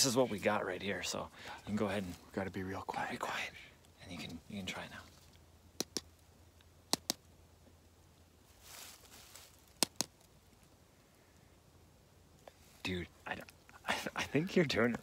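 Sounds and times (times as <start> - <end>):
soft hiss: 0.0 - 15.0.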